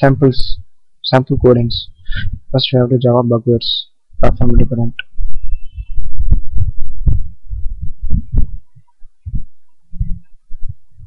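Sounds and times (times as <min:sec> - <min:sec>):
low thumps and rumble: 0:04.2 - 0:11.0.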